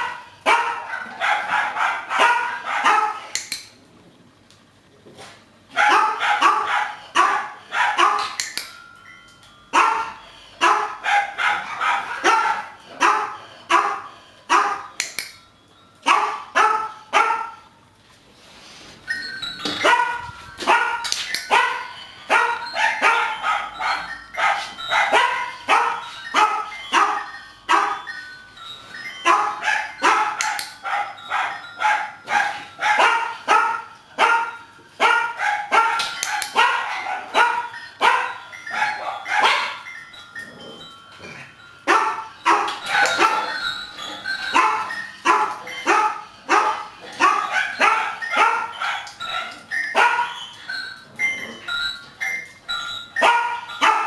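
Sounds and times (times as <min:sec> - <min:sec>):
small dog barking: 0:00.0 - 0:03.2, 0:05.8 - 0:08.3, 0:29.3 - 0:39.8.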